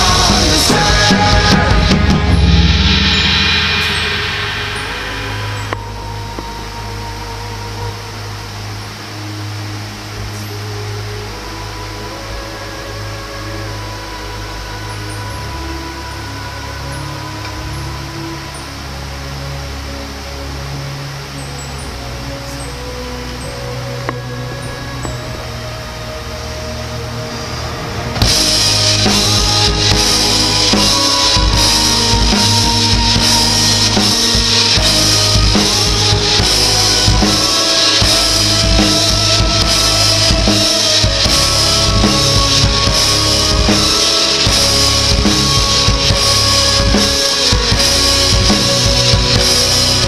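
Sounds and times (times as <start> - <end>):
cymbal ringing: 0.0 - 50.0
slow held melody: 0.0 - 50.0
sustained bass notes: 0.0 - 50.0.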